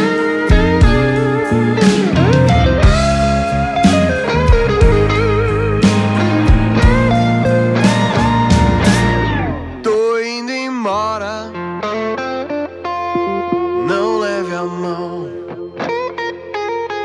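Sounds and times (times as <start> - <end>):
drums and bass: 0.0 - 9.8
electric guitar lead solo: 0.0 - 17.0.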